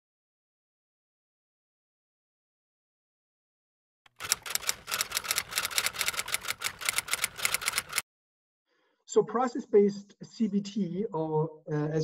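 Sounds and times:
typewriter key clacks: 4.1s - 8.0s.

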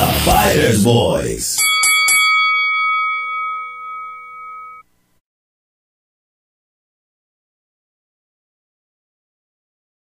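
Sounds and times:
metal bell ringing: 1.6s - 4.9s.

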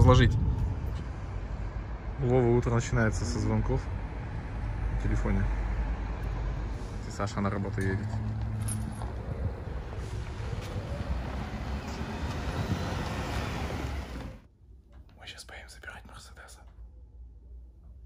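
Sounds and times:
car driving on asphalt: 0.0s - 14.5s
low rumble: 0.0s - 14.9s.

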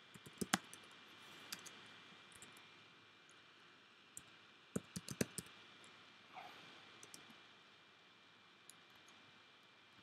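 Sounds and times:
faint keyboard keystrokes: 4.8s - 5.5s.

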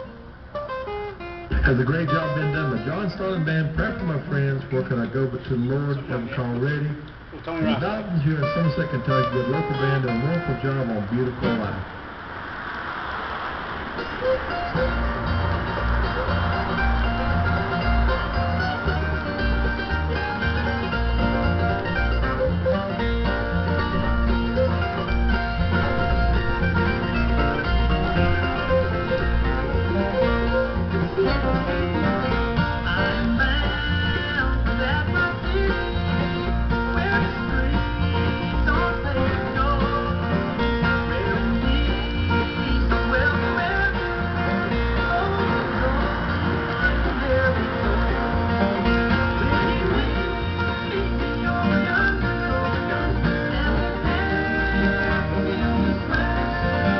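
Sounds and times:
banjo: 0.0s - 12.0s, 13.6s - 56.9s
bluegrass band on radio: 0.0s - 56.9s
flatpicked acoustic guitar: 0.0s - 56.9s
steady bass beat: 13.2s - 56.9s.

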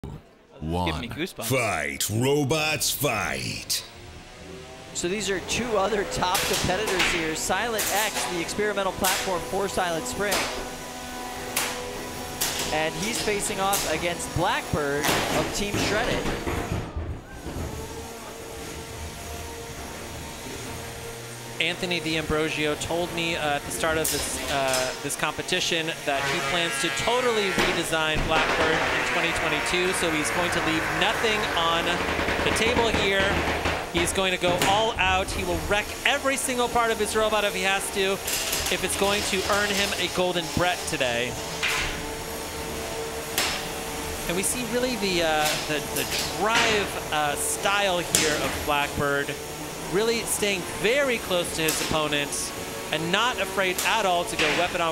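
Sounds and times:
noisy background: 0.0s - 54.9s.

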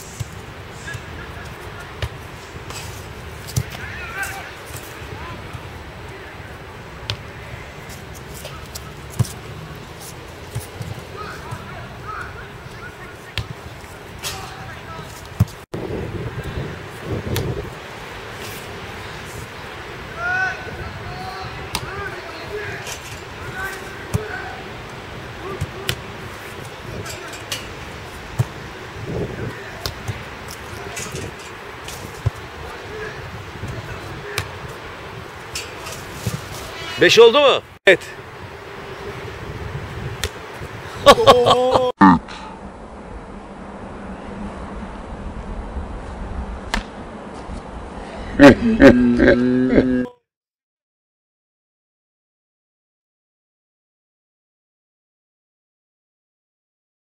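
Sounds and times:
football ball strikes: 40.2s - 40.4s.

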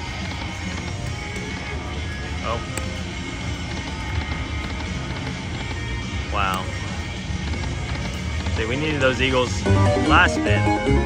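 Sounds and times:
low hum of casino floor: 0.0s - 11.0s
slot machine electronic spin music: 0.0s - 11.0s
slot machine reels spinning: 0.0s - 11.0s.

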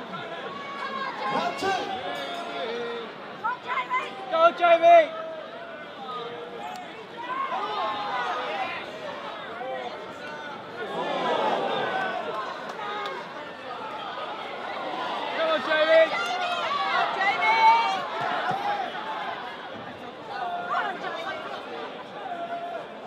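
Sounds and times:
crowd talking and calling out: 0.0s - 23.0s
loud shouts: 10.8s - 19.6s.

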